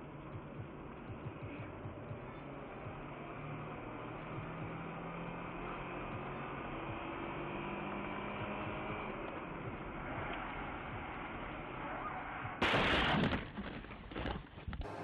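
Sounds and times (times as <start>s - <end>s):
car engine hum from inside: 0.0s - 12.6s
tyre noise on road: 0.0s - 15.0s.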